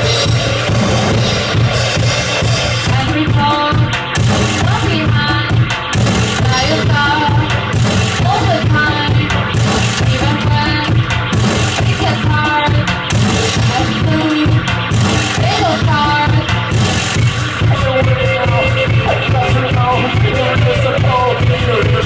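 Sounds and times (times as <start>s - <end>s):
live synth-punk band playing: 0.0s - 22.0s.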